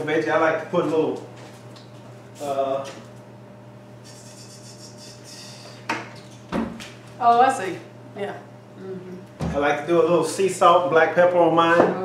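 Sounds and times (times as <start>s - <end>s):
low steady hum: 1.8s - 12.0s.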